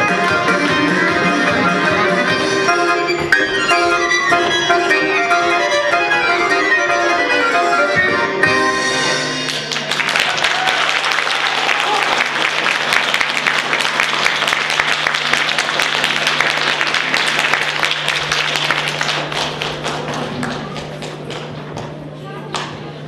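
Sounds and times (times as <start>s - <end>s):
audience applause: 9.5s - 21.3s.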